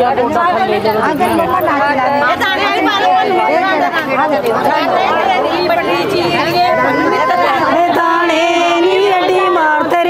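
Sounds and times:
women chattering: 0:00.0 - 0:10.0.

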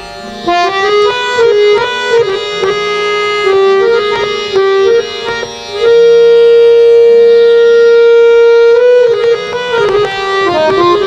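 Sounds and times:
harmonium playing a melody: 0:00.0 - 0:11.0.

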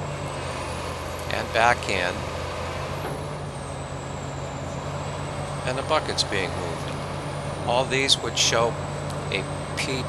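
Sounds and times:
excavator diesel engine running: 0:00.0 - 0:10.0.

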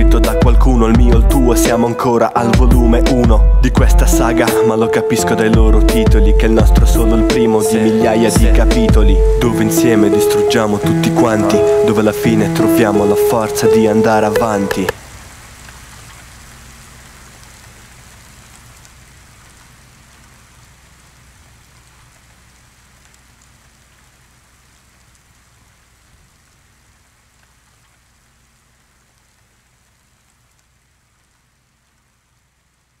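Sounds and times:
rain-like hiss: 0:03.2 - 0:33.0.

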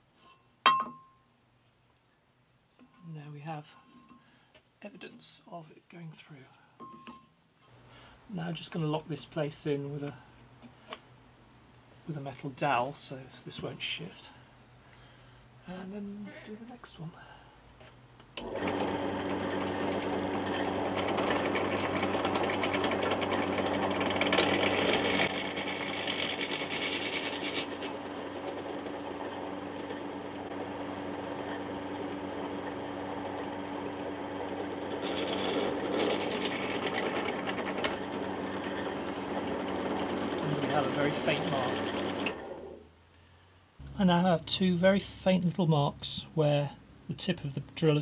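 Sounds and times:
thin high whine: 0:25.2 - 0:36.5
drill bit cutting wood: 0:25.3 - 0:36.5
drill press motor running: 0:25.3 - 0:36.5.

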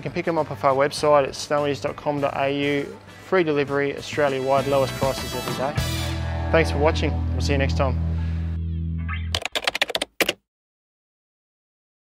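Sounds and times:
rapid typing-like clicks: 0:09.4 - 0:10.4.

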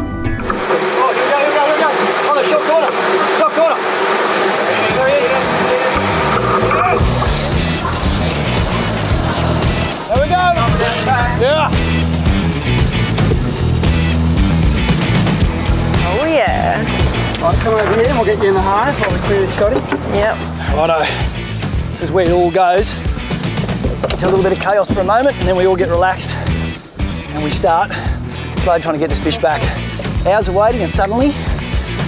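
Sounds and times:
background music: 0:00.0 - 0:01.4, 0:05.4 - 0:32.0
boat engine and wash rushing: 0:00.4 - 0:32.0
crew shouting: 0:00.6 - 0:12.0.

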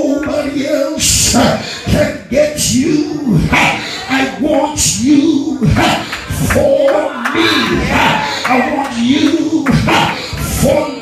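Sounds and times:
excited shouting voices: 0:02.8 - 0:11.0.

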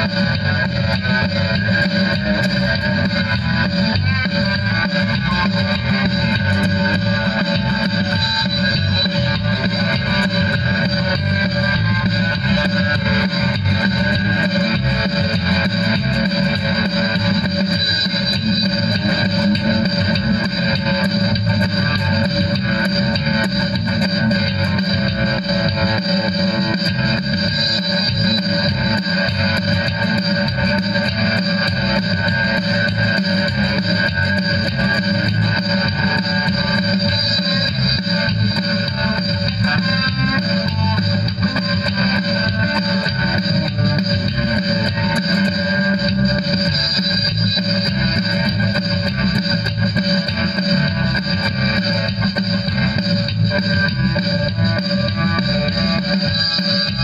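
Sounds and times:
bass guitar: 0:00.0 - 0:57.0
rock guitar through amplifier: 0:00.0 - 0:57.0.

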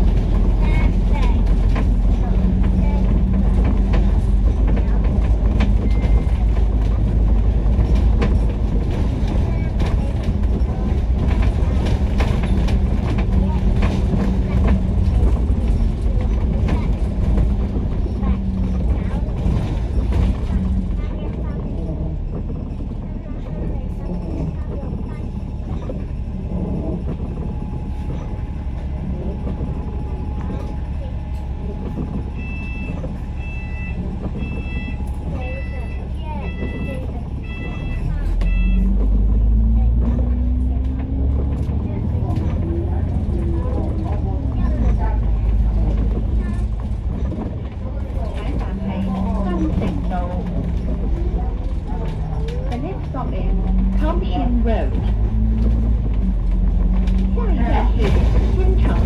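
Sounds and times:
bus diesel engine: 0:00.0 - 0:59.0.

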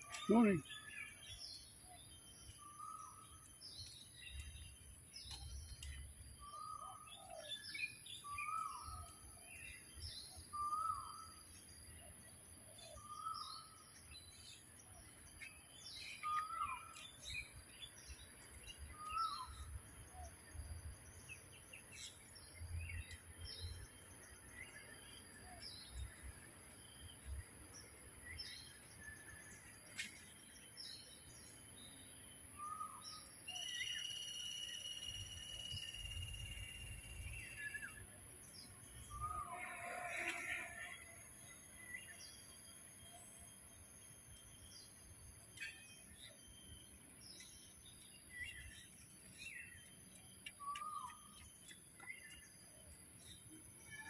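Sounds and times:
birds calling and chirping: 0:00.0 - 0:54.0.

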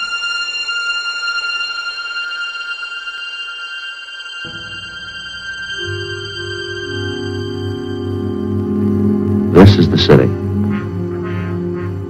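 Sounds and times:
low opening theme notes: 0:00.0 - 0:12.0
high held note: 0:04.2 - 0:12.0.

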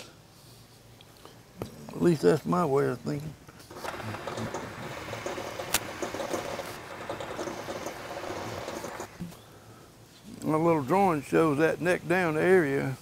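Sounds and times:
metal lathe cutting rattle: 0:03.7 - 0:09.2.

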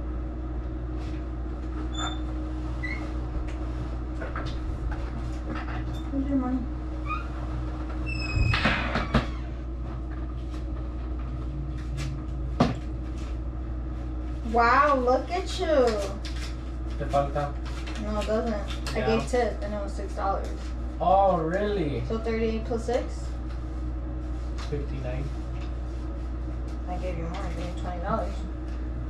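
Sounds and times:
low machine hum: 0:00.0 - 0:29.0.

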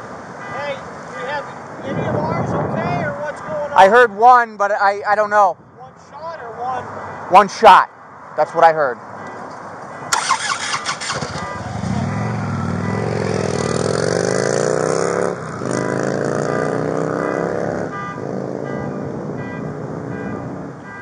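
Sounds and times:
motorcycle engine accelerating: 0:10.1 - 0:20.2.

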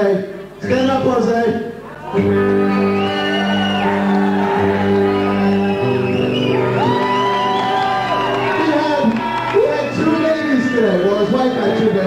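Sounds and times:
rock band playing slow chords: 0:01.9 - 0:10.8.

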